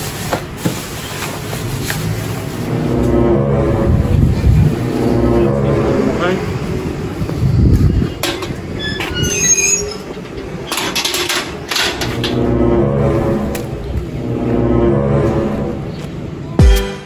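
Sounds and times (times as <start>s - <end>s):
steady low drone: 2.2s - 8.2s, 11.6s - 17.0s
metal door squealing on hinges: 8.2s - 13.6s.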